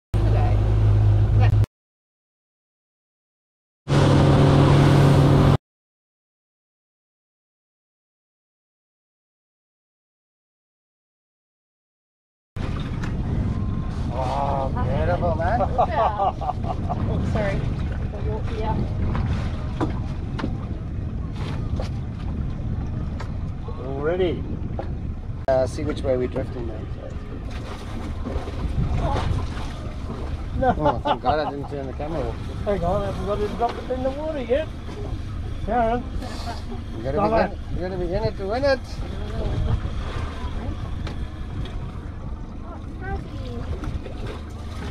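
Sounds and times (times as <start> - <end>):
boat motor running: 0.2 - 1.7, 3.9 - 5.6, 12.6 - 44.9
wind buffeting microphone: 12.6 - 44.9.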